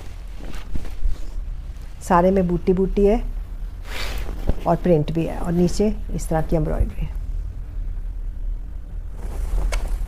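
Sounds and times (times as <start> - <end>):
fabric rustling: 0.0 - 3.0, 3.8 - 6.4, 9.0 - 10.0
steady low rumble: 0.0 - 10.0.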